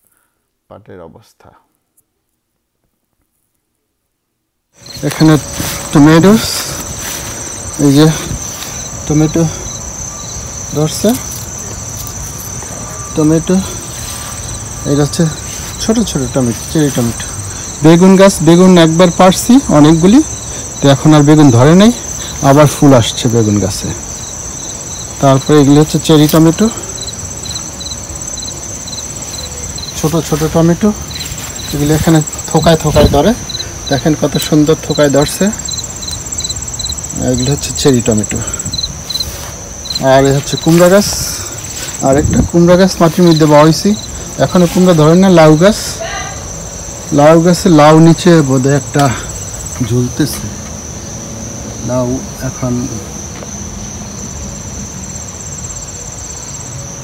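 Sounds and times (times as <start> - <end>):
crickets chirping: 4.7 - 57.0
high-pitched insect trill: 4.7 - 57.0.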